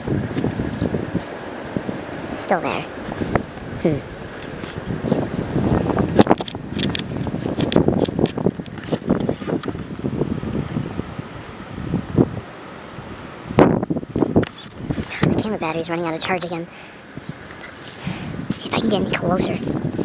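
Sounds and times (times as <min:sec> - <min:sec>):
wind buffeting microphone: 0:00.0 - 0:20.0
footsteps crunching dry leaves: 0:04.4 - 0:07.9.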